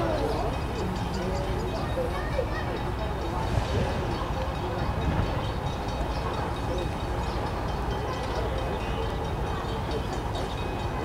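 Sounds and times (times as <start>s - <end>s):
distant steam train rumble: 0.0s - 11.0s.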